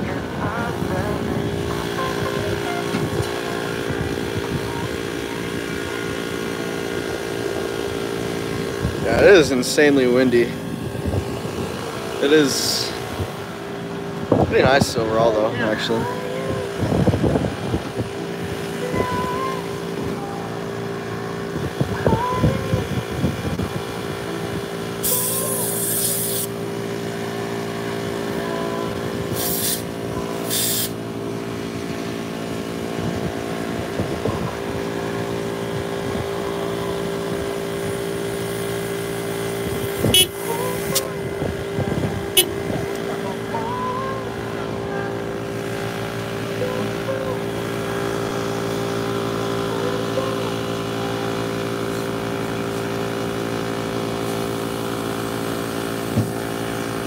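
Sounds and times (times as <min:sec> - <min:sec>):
steady motor drone: 0:00.0 - 0:57.0
short hisses: 0:29.4 - 0:31.0.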